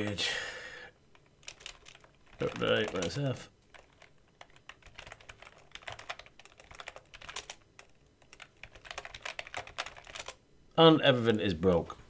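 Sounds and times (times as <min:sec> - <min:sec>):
typing on computer keyboard: 0:01.2 - 0:10.4.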